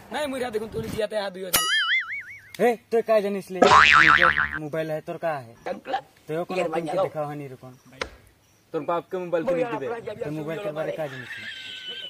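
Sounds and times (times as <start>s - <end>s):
cartoon boing whistle: 1.6s - 2.6s, 3.6s - 4.6s.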